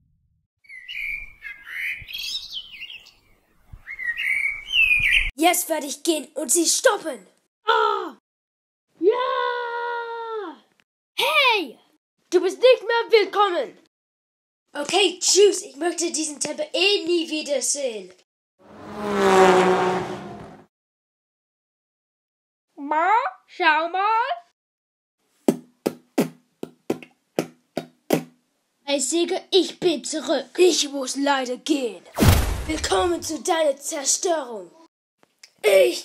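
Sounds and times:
birds chirping and trilling: 0.6 - 5.3
vehicle engine driving off: 18.6 - 20.6.

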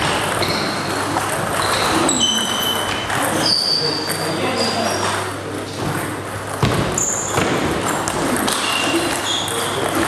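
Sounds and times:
table tennis balls bouncing: 0.0 - 10.0.

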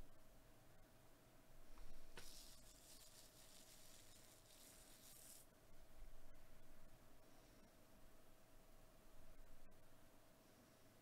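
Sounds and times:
faint high hiss: 0.0 - 11.0
low steady hum: 0.0 - 11.0.

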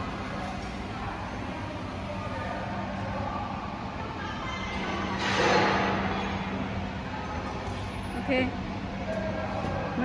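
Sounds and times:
factory hum: 0.0 - 10.0.

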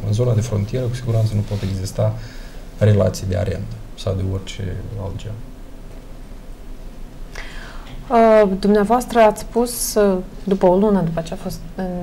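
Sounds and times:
low room hum: 0.0 - 12.0
intake of breath: 2.2 - 2.7, 7.3 - 8.0.

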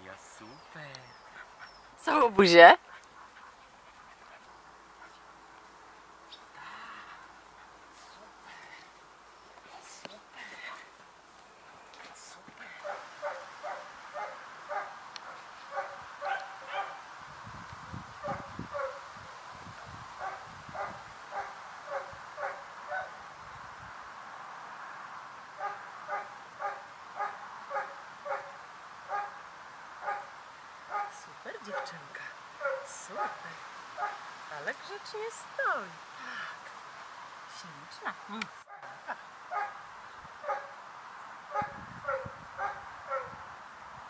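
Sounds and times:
dog yipping: 41.6 - 43.3.

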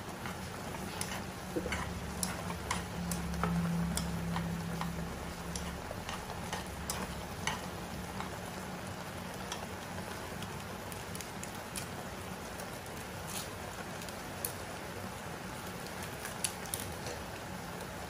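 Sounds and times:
chopsticks stirring: 0.0 - 11.9
noodles sizzling in a pan: 0.0 - 18.0
low hum: 1.3 - 8.2.

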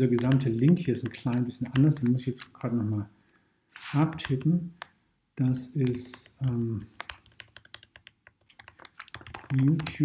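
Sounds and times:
keyboard typing clicks: 0.1 - 2.7, 4.1 - 5.0, 5.8 - 10.0.

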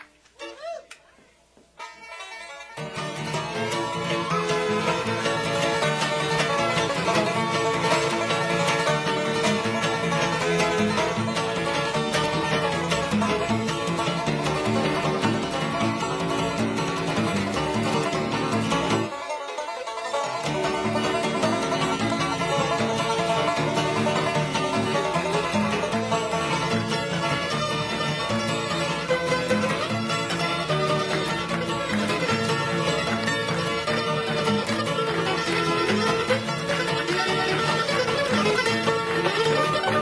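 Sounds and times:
bluegrass band playing: 0.0 - 40.0
fiddle: 0.0 - 40.0.

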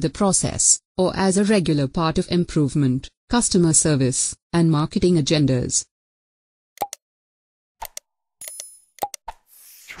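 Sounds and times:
cursor clicks with pops: 6.8 - 7.0, 7.8 - 9.4.

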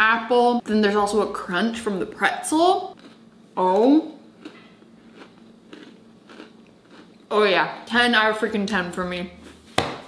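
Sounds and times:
person chewing crunchy food: 2.9 - 3.3, 4.2 - 7.3.

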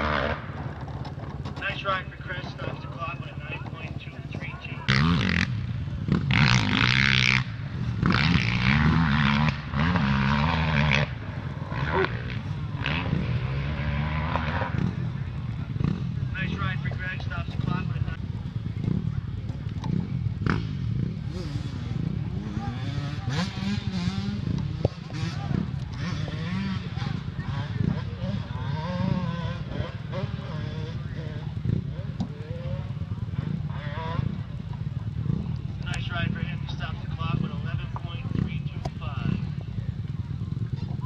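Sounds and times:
dirt bike engines revving: 0.0 - 41.0
crowd of spectators talking: 0.6 - 6.2, 14.5 - 41.0.

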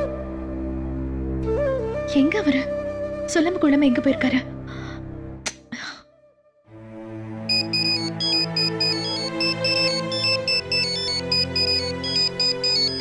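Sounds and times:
low background music: 0.0 - 13.0
mobile phone ringtone: 7.5 - 13.0.

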